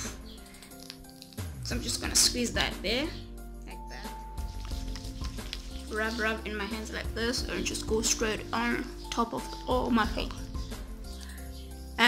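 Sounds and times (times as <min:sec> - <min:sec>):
background music: 0:00.0 - 0:12.0
soft wet rubbing of hands: 0:04.4 - 0:06.3.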